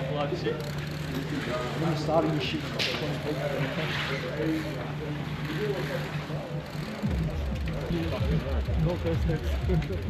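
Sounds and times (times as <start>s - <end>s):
people talking: 0.0s - 10.0s
steady low hum: 0.0s - 10.0s.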